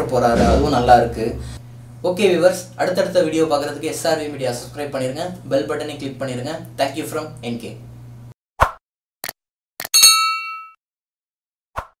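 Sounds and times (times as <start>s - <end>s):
short hit sound effect: 0.0s - 1.6s
ringing bell-like ding: 10.0s - 10.8s.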